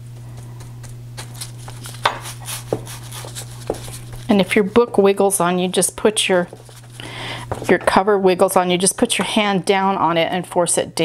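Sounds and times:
steady low hum: 0.0s - 11.0s
brush stroking and dabbing glue: 1.2s - 7.8s.

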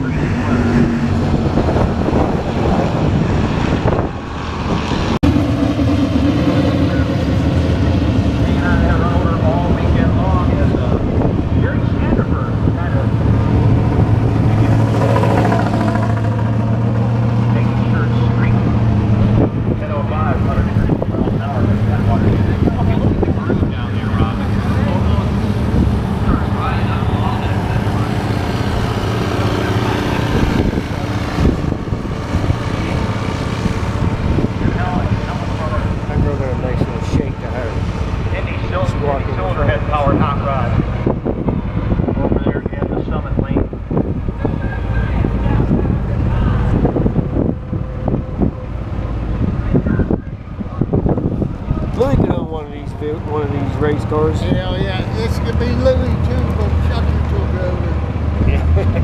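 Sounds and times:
people talking: 0.0s - 1.2s, 6.4s - 13.6s, 17.5s - 31.5s, 34.5s - 40.8s, 42.2s - 43.7s, 44.4s - 47.0s, 49.6s - 51.0s, 51.7s - 59.0s
car engines idling: 0.0s - 59.0s.

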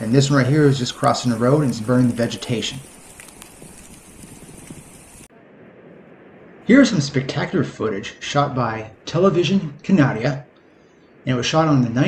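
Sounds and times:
vegetation burning crackling: 0.0s - 10.2s
steady rushing hiss: 0.0s - 12.0s.

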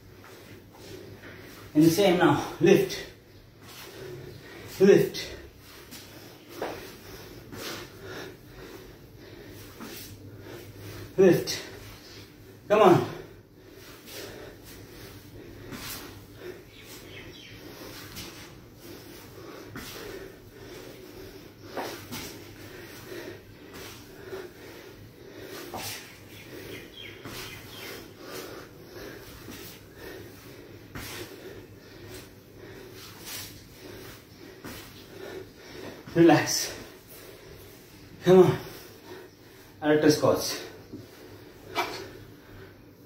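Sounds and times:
man breathing hard: 0.0s - 39.8s, 40.5s - 43.0s.

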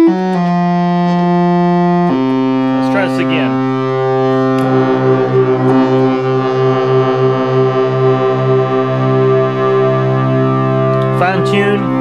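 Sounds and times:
buzzy synthesizer note: 0.0s - 12.0s.

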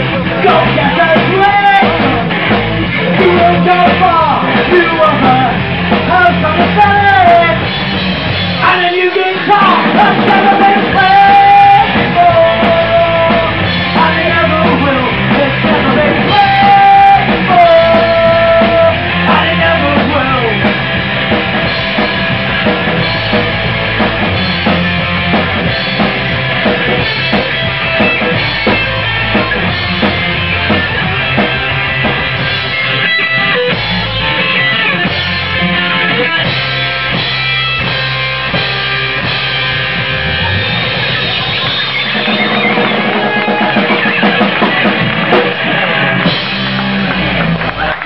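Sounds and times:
bass guitar: 0.0s - 48.0s
distorted electric guitars: 0.0s - 48.0s
drum kit: 0.0s - 48.0s.

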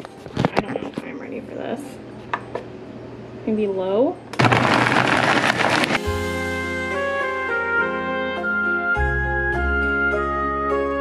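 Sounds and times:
blender whirring: 4.4s - 6.0s
background music with held notes: 6.0s - 11.0s.

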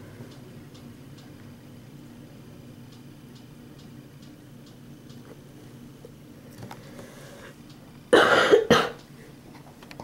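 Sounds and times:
person coughing: 8.1s - 9.0s.

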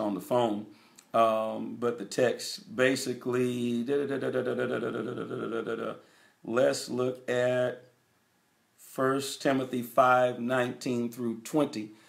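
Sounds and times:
man saying drawn-out uhh: 0.0s - 7.8s.

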